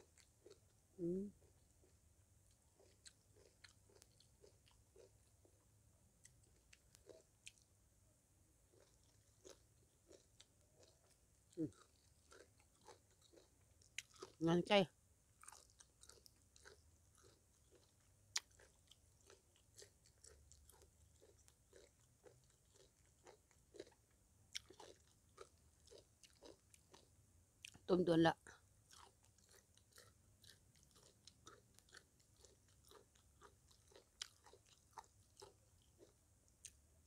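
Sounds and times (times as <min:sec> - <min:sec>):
wet crunchy chewing: 0:01.4 - 0:05.6, 0:08.7 - 0:14.4, 0:15.4 - 0:27.8, 0:28.5 - 0:36.8.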